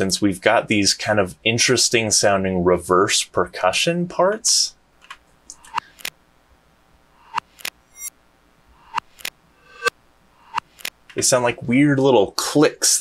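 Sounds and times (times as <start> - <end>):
reversed percussion clicks: 5.0 - 6.2, 7.2 - 8.1, 8.8 - 11.2
reversed rising swell: 8.7 - 10.6.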